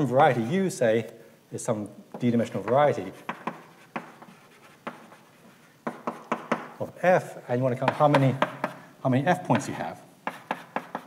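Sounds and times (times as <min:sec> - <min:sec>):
chalk tapping on blackboard: 0:02.1 - 0:06.8, 0:07.8 - 0:08.8, 0:09.5 - 0:11.0
chalk scraping on blackboard: 0:02.5 - 0:06.7, 0:09.6 - 0:11.0.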